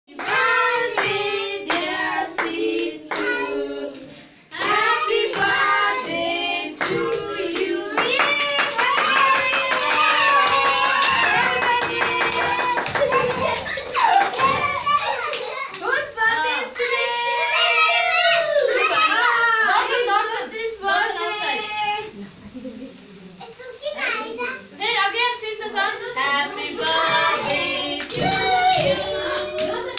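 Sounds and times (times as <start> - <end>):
children and women singing: 0.1 - 13.6, 24.8 - 29.9
hand claps: 0.2 - 3.3, 7.9 - 16.0, 26.8 - 29.9
young children talking: 8.4 - 19.9, 23.0 - 24.8.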